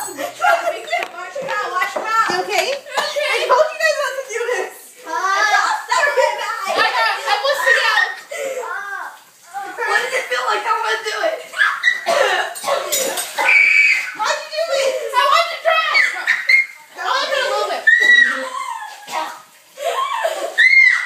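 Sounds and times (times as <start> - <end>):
girls talking and crying out: 0.0 - 21.0.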